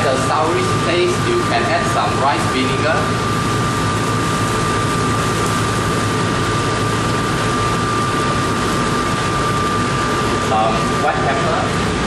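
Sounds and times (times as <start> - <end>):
gas wok range roaring: 0.0 - 12.0
kitchen fans: 0.0 - 12.0
thin steady whine: 0.0 - 12.0.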